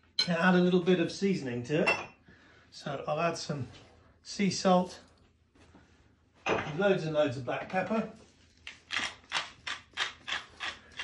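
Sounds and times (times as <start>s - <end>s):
pepper mill grinding: 8.6s - 11.0s.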